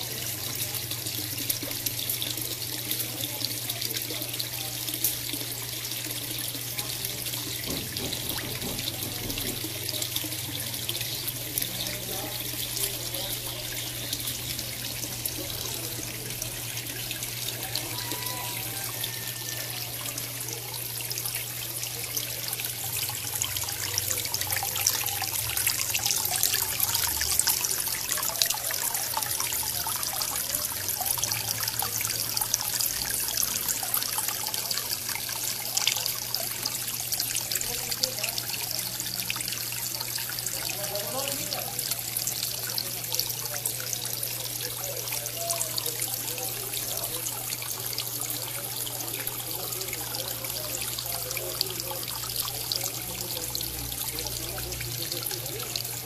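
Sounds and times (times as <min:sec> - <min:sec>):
water trickling into tank: 0:00.0 - 0:56.0.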